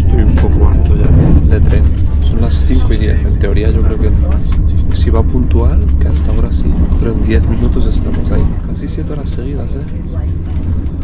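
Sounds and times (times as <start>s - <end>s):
voices talking: 0.0s - 10.5s
train rumble inside carriage: 0.0s - 11.0s.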